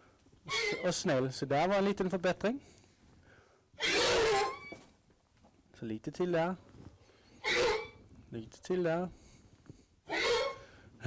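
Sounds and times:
horse snorting: 0:07.4 - 0:08.0, 0:10.1 - 0:10.7.

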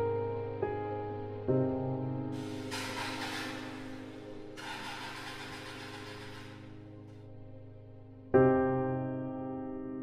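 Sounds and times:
soft background music: 0:00.0 - 0:10.0
car engine running: 0:02.4 - 0:06.8.

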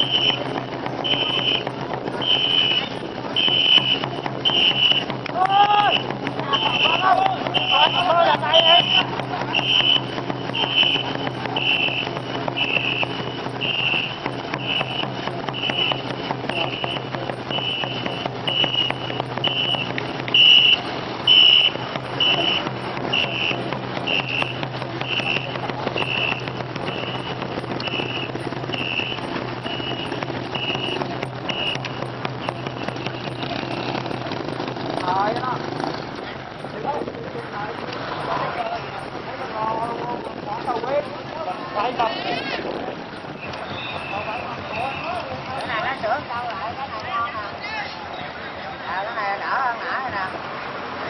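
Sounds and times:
whistle blasts: 0:00.0 - 0:34.2, 0:43.2 - 0:46.0
paddles churning water: 0:00.0 - 0:51.0.

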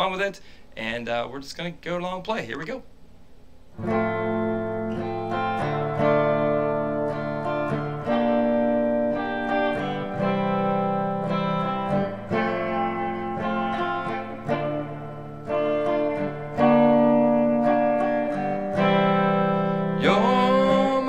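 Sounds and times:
electric guitar chords ringing: 0:03.7 - 0:21.0.

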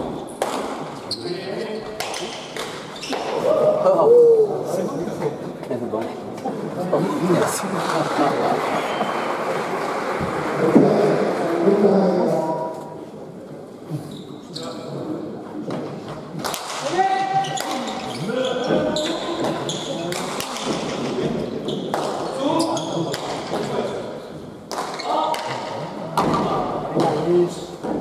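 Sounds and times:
ball smacking off walls with echo: 0:24.7 - 0:28.0.

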